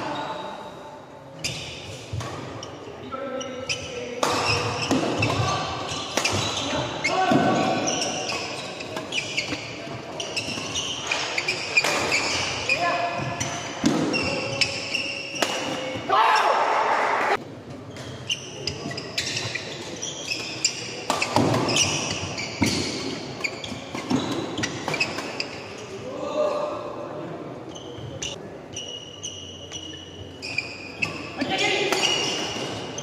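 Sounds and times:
players' voices: 0.0s - 28.4s
shoes squeaking on wooden floor: 3.4s - 15.4s, 18.0s - 25.9s.

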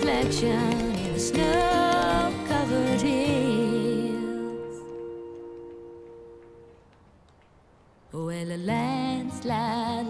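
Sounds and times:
slow song held notes: 0.0s - 6.9s.

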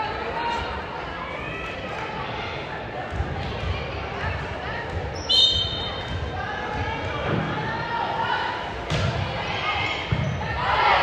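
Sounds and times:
crowd chatter: 0.0s - 11.0s
referee's whistle: 5.2s - 6.0s.

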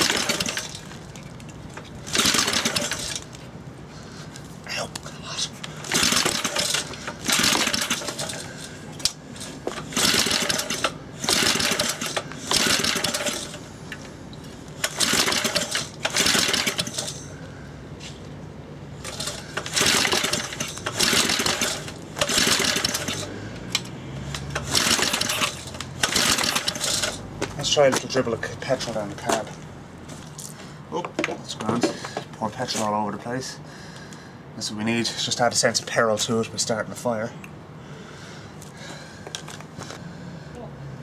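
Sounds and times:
engine recoil-starter pulls: 0.0s - 3.4s, 5.8s - 14.1s, 14.8s - 17.4s, 19.0s - 27.3s.

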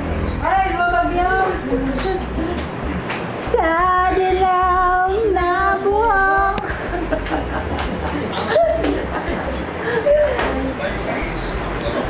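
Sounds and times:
background music: 0.0s - 12.0s
high voice singing: 0.3s - 6.6s.

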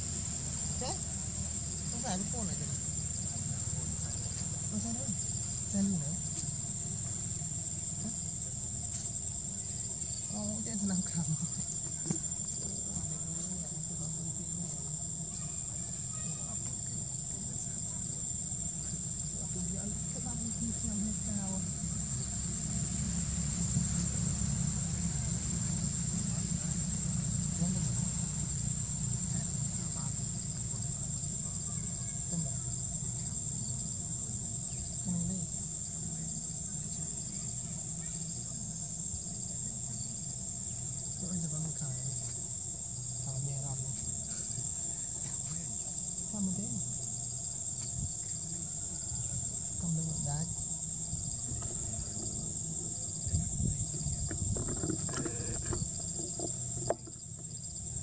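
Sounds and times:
faint distant voices: 0.0s - 58.0s
insects droning: 0.0s - 58.0s.

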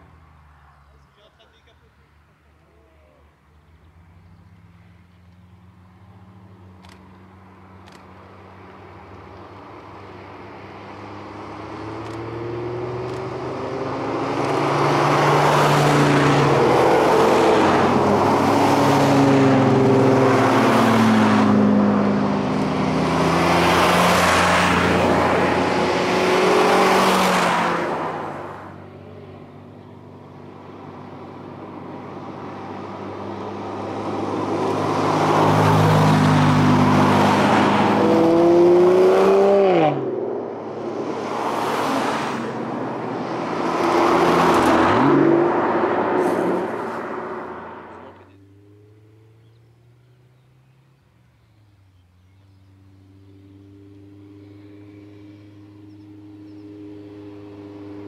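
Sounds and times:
car engines accelerating past: 3.6s - 58.0s.

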